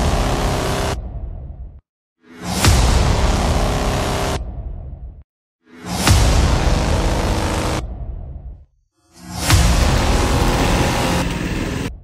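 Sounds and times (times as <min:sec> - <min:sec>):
go-kart engines running: 0:09.7 - 0:11.9.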